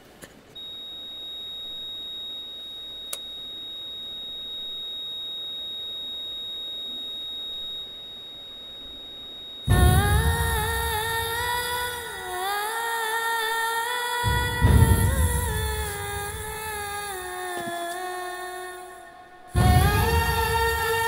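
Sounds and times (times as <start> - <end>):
heart monitor flatline beep: 0.6 - 12.2, 14.2 - 17.2, 19.6 - 21.0
music with singing: 9.7 - 21.0.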